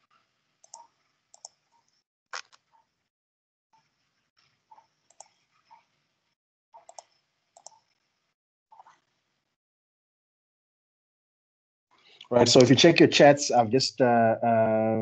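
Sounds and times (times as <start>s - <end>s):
keyboard and mouse clicks: 0.6s - 2.6s, 4.7s - 5.9s, 6.8s - 7.9s.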